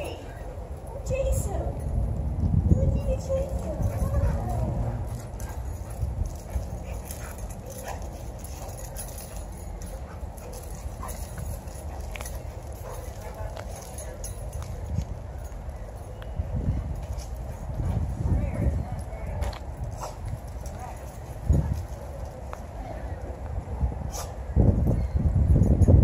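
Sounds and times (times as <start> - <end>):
paws and claws on asphalt: 0.0 - 25.1
dogs playing rough: 3.6 - 14.6.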